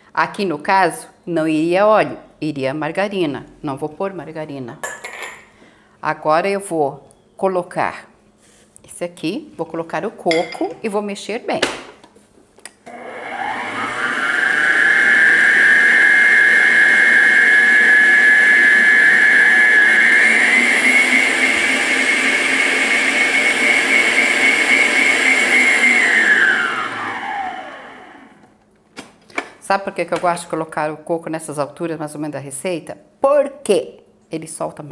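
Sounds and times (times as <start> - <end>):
stand mixer motor whining: 12.9 - 28.4.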